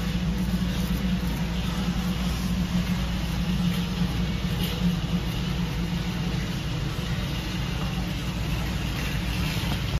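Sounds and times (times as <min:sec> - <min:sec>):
low rumble and hum: 0:00.0 - 0:09.9.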